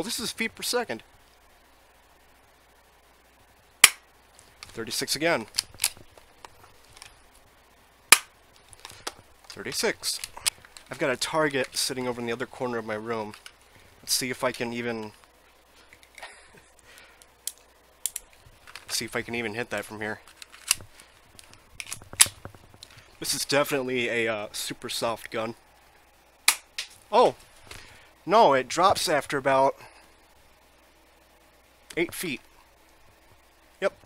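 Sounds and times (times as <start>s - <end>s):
airsoft pistol shot snap: 3.8s - 4.0s.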